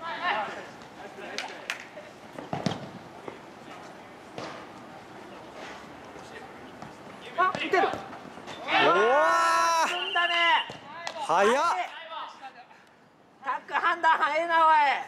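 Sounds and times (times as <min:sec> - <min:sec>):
ball being kicked: 0:02.5 - 0:03.0
players calling out: 0:07.2 - 0:12.4
people shouting: 0:08.6 - 0:10.7.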